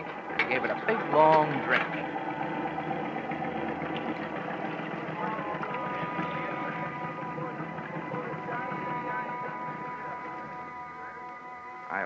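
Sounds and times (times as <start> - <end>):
gasoline motor running: 0.0 - 12.0
held musical tones: 0.0 - 12.0.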